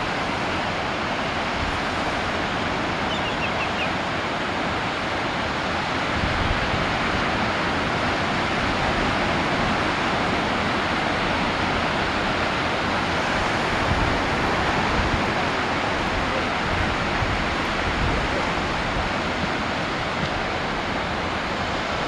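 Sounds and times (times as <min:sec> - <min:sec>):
ocean waves breaking: 0:00.0 - 0:22.0
faint high chirps: 0:03.1 - 0:03.9.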